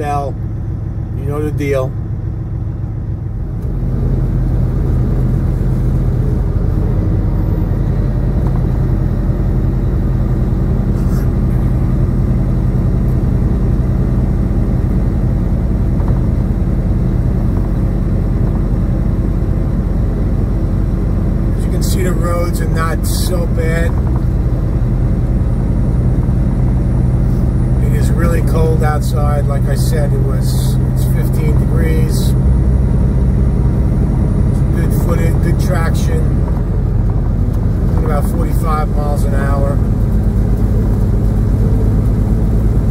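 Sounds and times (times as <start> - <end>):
diesel truck engine running: 0.0 - 42.9
tyre and road noise: 0.0 - 42.9.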